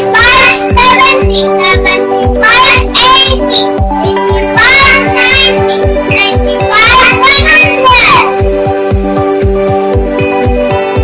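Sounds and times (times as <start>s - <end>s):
child singing: 0.0s - 8.4s
backing music with steady beat: 0.0s - 11.0s.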